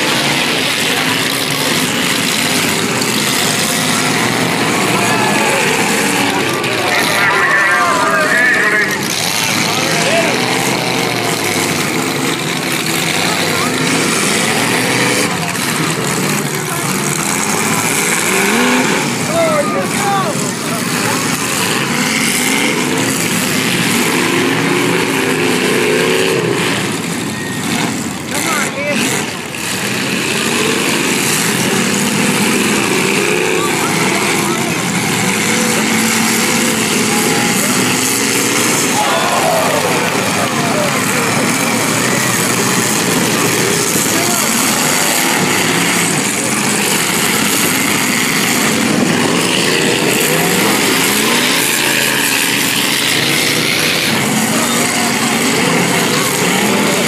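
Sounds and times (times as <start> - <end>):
car engines revving: 0.0 - 57.0
crowd voices: 0.0 - 57.0.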